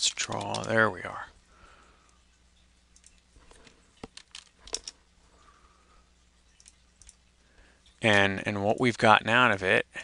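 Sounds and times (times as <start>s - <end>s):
faint computer keyboard keystrokes: 0.1s - 0.8s, 2.9s - 4.9s, 6.5s - 7.2s.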